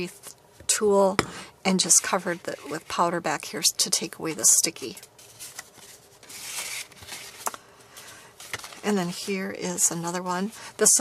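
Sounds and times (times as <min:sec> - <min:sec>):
cardstock rustling and sliding: 0:04.9 - 0:09.3.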